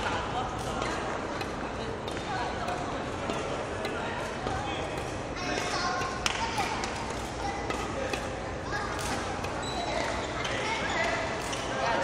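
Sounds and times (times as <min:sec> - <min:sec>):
indistinct voices in large hall: 0:00.0 - 0:12.0.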